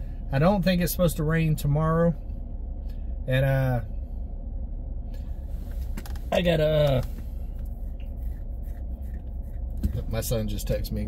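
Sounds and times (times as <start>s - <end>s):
truck engine running in cab: 0.0s - 11.0s.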